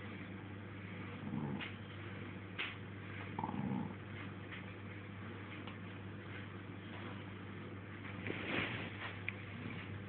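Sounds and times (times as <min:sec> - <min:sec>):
dog growling: 0:01.2 - 0:01.8, 0:03.4 - 0:04.0.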